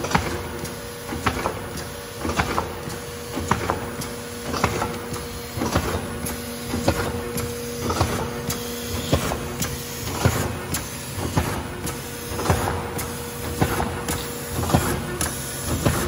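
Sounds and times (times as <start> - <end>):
machine motor hum: 0.0 - 16.0
mechanical clacks: 0.0 - 16.0.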